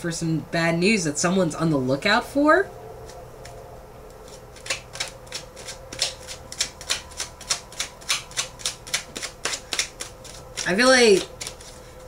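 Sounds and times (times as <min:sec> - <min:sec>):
cards shuffled by hand: 0:04.2 - 0:12.0.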